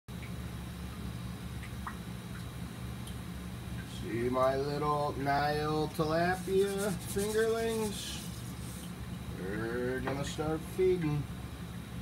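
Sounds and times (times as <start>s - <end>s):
water dripping: 0.1s - 3.9s
water pump humming: 0.1s - 12.0s.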